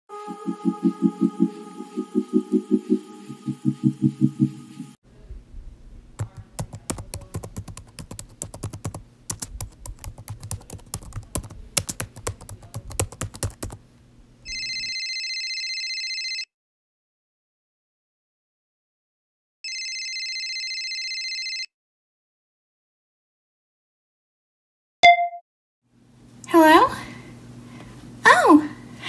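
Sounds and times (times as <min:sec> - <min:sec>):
high electronic tone: 0:00.1 - 0:05.0
typing on computer keyboard: 0:06.2 - 0:13.8.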